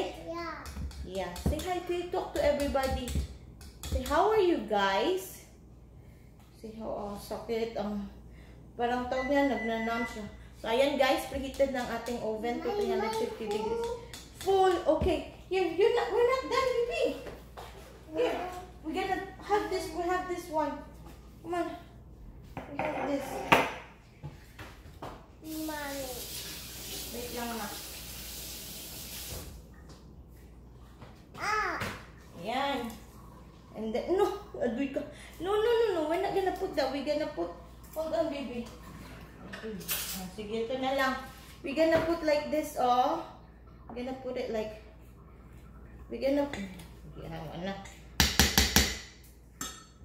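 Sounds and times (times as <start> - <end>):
utensil knocking on metal bowl: 0.6 - 4.3, 48.2 - 49.9
water running from a tap: 25.4 - 29.7.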